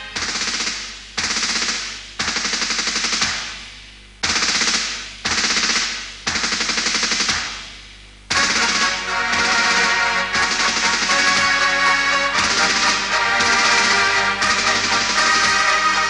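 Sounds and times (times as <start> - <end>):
automatic gunfire bursts: 0.2 - 3.6, 4.2 - 7.7, 8.3 - 16.0.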